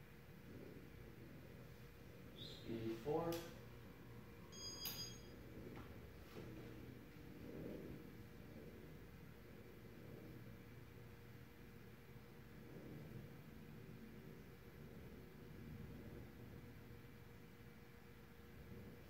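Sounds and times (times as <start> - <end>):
ceiling fan humming: 0.0 - 19.0
click with high ringing tone: 4.5 - 5.3.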